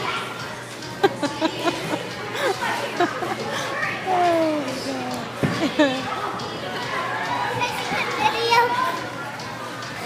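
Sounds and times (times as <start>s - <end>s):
children's voices: 3.4s - 5.4s.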